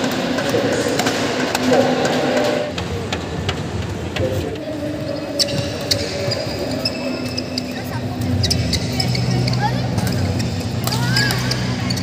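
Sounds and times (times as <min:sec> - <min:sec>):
people talking in a hall: 0:00.0 - 0:12.0.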